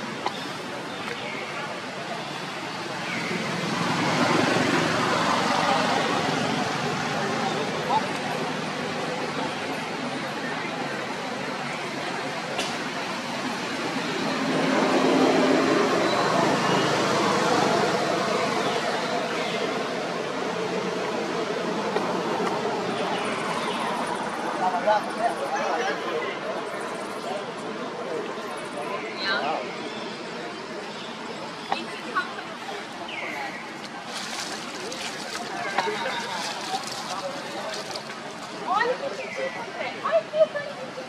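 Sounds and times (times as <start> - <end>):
outdoor noise: 0.0 - 41.0
people talking indistinctly: 21.9 - 41.0.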